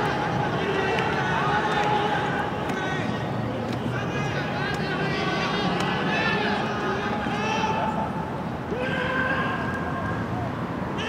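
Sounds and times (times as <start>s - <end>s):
outdoor background noise: 0.0s - 11.0s
person shouting: 8.7s - 10.1s.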